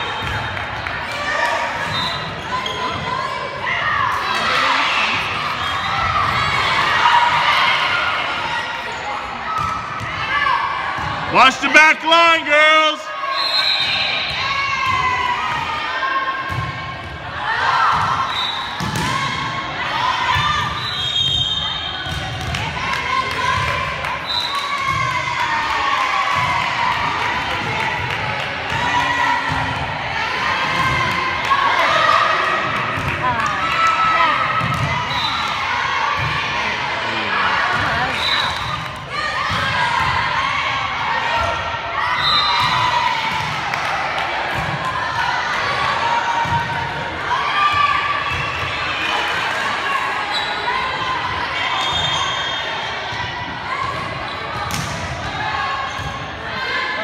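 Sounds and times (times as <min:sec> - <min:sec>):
voices calling and cheering: 0:00.0 - 0:57.0.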